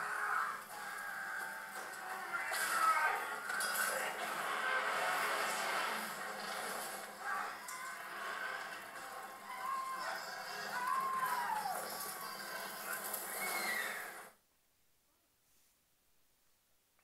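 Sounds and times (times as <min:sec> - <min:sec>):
voices: 0:00.0 - 0:04.8
drawn-out cries: 0:07.2 - 0:12.6.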